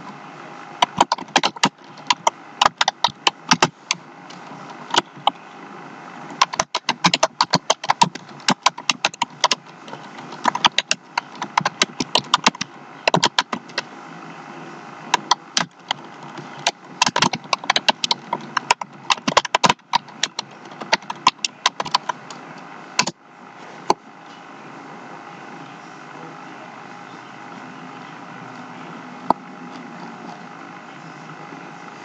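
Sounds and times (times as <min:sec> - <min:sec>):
sharp clicks and taps: 0:00.8 - 0:05.4, 0:06.3 - 0:13.9, 0:15.1 - 0:22.4, 0:23.0 - 0:23.2.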